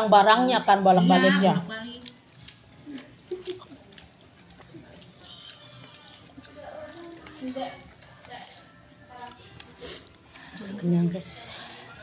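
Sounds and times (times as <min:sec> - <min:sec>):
faint clicks and crinkles: 0:01.9 - 0:10.9
chewing rice: 0:01.9 - 0:12.0.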